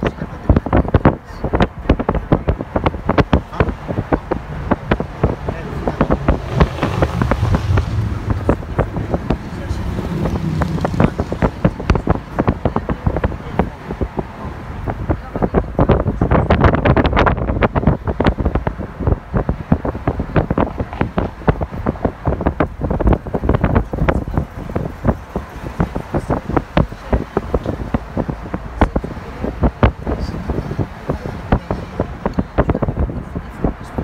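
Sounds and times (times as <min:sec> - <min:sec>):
car road noise: 0:00.0 - 0:34.0
wind buffeting microphone: 0:00.0 - 0:34.0.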